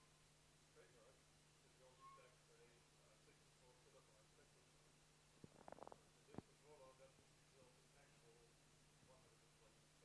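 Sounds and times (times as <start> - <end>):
distant voice asking a question: 0.8 - 4.7.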